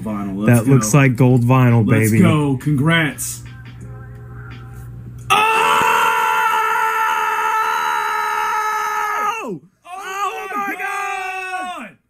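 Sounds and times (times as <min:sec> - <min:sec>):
person screaming: 0:05.3 - 0:11.9.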